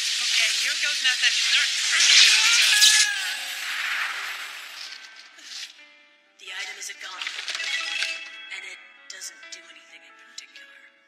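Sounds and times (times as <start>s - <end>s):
hissing sizzling magic effect: 0.0s - 5.8s.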